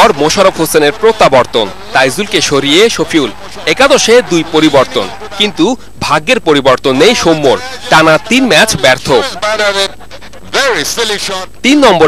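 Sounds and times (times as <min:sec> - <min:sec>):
news narration: 0:00.0 - 0:12.0.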